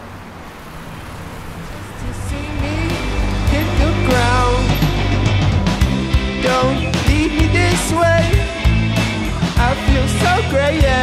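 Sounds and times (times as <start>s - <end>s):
city traffic hum: 0.0s - 11.0s
music with deep bass: 2.0s - 11.0s.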